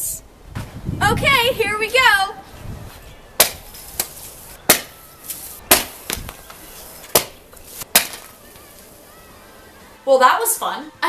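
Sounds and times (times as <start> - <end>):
soda cans bursting with bangs: 7.2 - 8.9.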